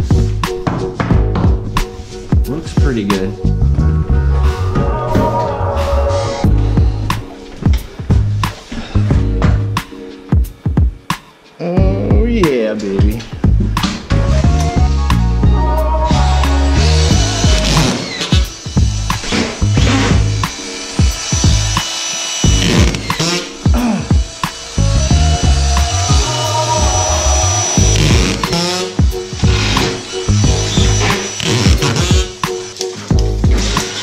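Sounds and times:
background music: 0.0 - 34.0
screw gun whirring: 16.4 - 34.0.

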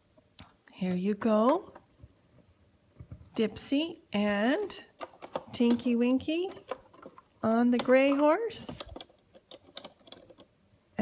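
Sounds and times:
plastic toy figures clicking: 4.6 - 10.6.

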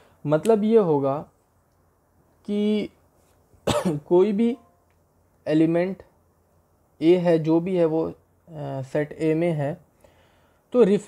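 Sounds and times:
man coughing: 3.6 - 4.1.

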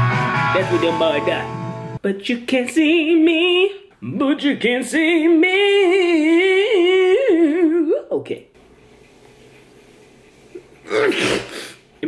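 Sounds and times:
man sneezing: 10.9 - 11.8.

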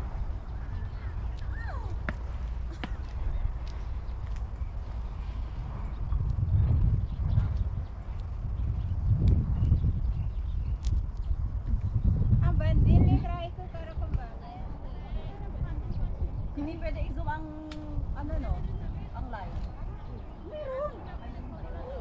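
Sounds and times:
faint distant voices: 0.0 - 4.2, 12.9 - 22.0
wind rumbling on microphone: 0.0 - 22.0.

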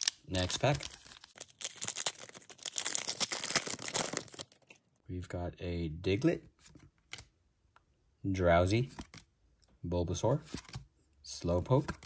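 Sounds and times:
foil wrapper crinkling and ripping: 0.0 - 4.8.

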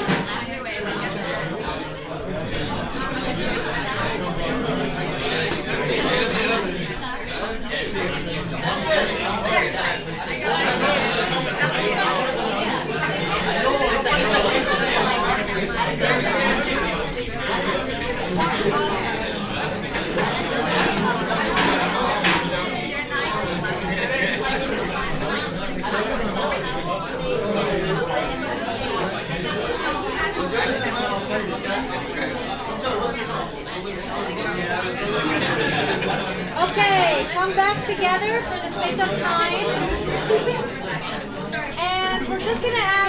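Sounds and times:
overlapping conversations: 0.0 - 43.0.

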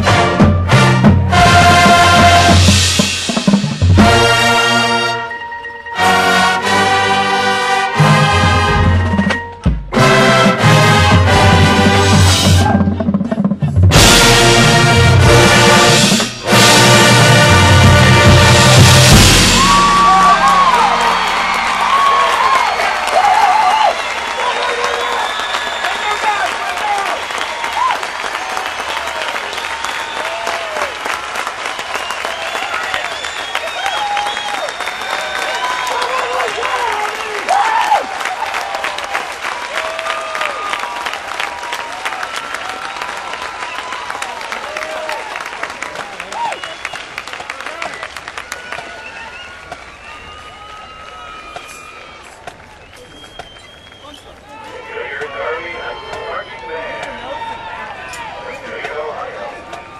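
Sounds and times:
marching band chord: 0.0 - 24.4
crowd applause and cheering: 0.0 - 59.9
crowd whistling: 16.2 - 59.9.

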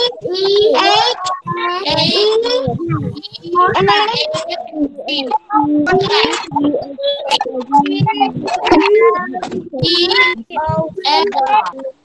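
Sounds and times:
children reading aloud in chant: 0.0 - 12.0.

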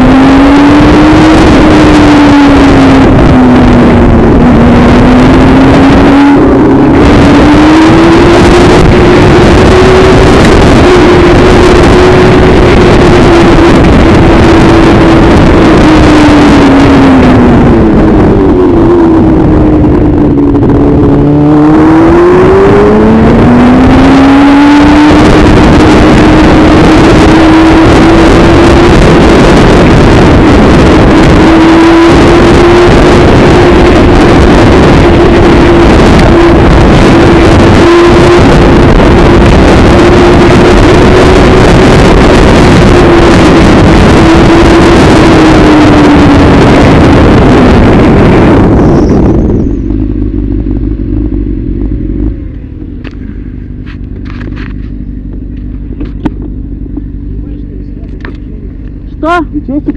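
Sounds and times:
motorcycle engine: 0.0 - 59.9
wind rush on microphone: 0.0 - 59.9.

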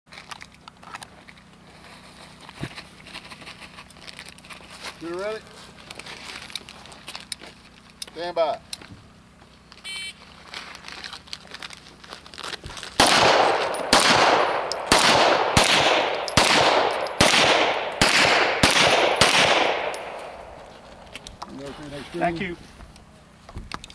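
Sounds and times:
handgun shots with echo: 13.0 - 20.6.

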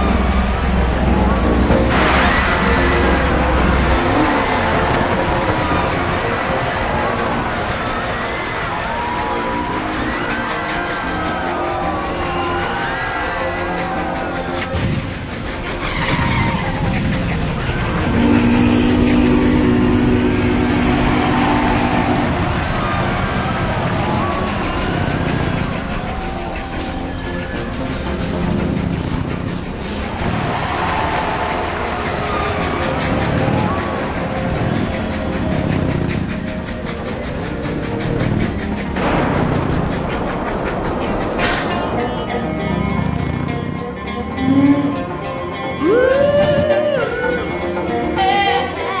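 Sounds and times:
car engine revving: 0.0 - 48.9.

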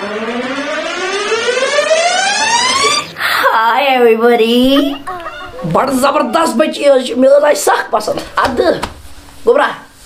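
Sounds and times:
rising slide whistle tone: 0.0 - 3.1.

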